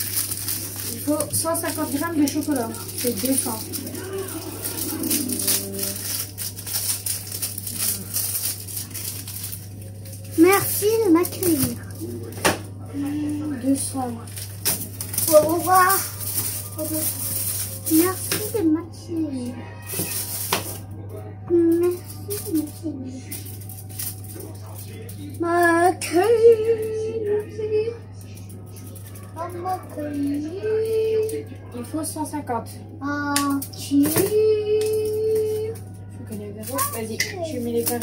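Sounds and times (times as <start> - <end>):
plastic wrapping crinkling: 0.0 - 20.9, 21.7 - 27.5, 28.2 - 31.5, 34.8 - 38.0.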